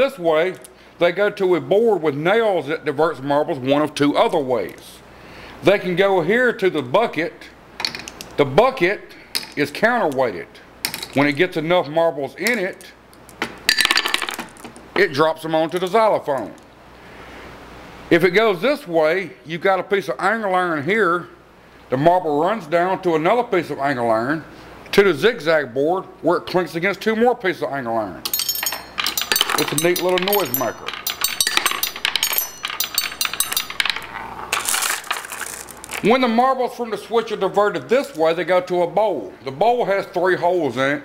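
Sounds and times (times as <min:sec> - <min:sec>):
marbles clinking on xylophone bars: 0:13.7 - 0:14.6, 0:28.3 - 0:36.1.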